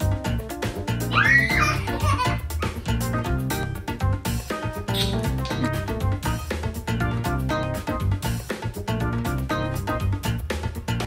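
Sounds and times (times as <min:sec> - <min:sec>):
background music with steady beat: 0:00.0 - 0:11.0
toddler squealing giggle: 0:01.1 - 0:02.9.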